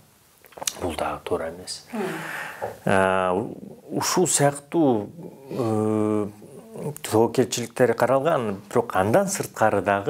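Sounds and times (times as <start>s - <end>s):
man speaking: 0.6s - 10.0s.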